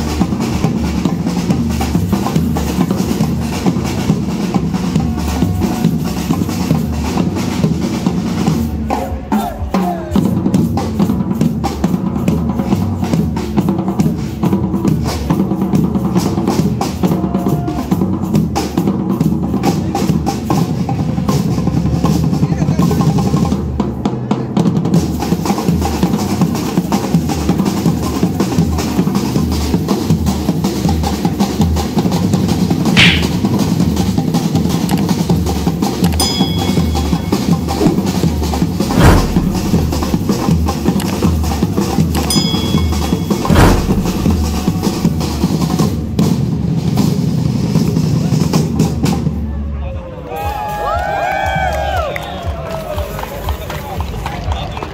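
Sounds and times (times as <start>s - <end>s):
marching bass drums beating: 33.0s - 33.6s, 36.7s - 41.5s, 42.2s - 45.4s.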